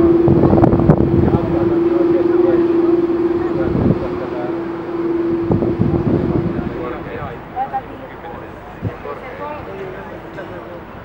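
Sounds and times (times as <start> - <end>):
jet engines whining: 0.0 - 11.0
wind gusting on microphone: 0.0 - 11.0.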